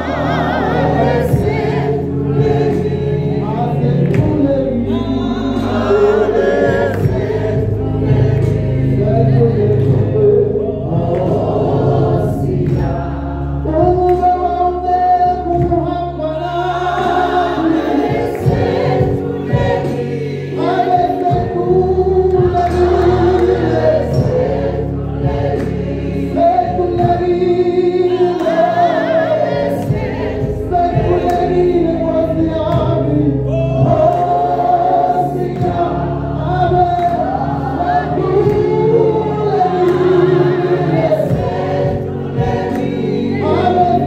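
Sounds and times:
lead voice singing: 0.0s - 44.0s
men's choir singing in harmony: 0.0s - 44.0s.

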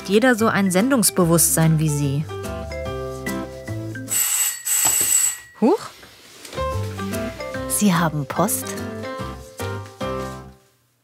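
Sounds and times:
electric doorbell ringing: 4.1s - 5.8s.

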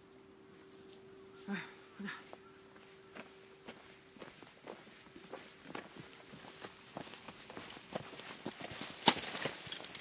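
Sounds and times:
booted footsteps on dirt: 2.2s - 10.0s
pony hooves on dirt: 2.2s - 10.0s.

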